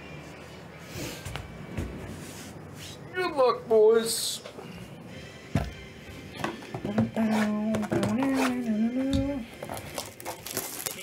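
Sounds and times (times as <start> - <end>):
faint music: 0.0 - 11.0.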